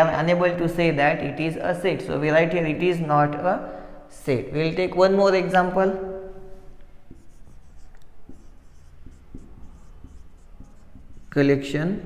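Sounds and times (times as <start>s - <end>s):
marker writing on whiteboard: 6.4s - 12.0s.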